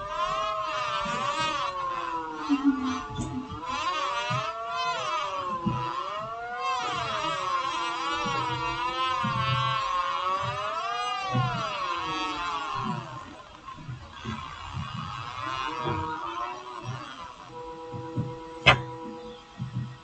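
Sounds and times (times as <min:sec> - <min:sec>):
low pulses: 0:00.0 - 0:20.0
synthesized electronic tones: 0:14.8 - 0:20.0.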